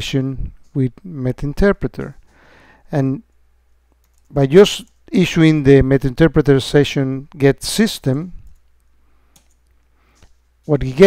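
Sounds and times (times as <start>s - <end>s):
man speaking: 0.0s - 2.2s, 2.9s - 3.2s, 4.3s - 8.4s, 10.6s - 11.0s.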